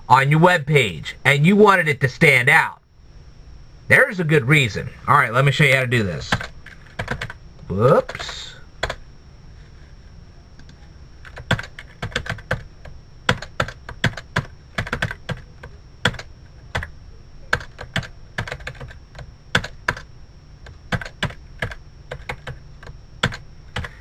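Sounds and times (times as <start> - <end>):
computer keyboard typing: 6.3 - 7.4, 8.1 - 9.0, 10.6 - 16.9, 17.5 - 24.0.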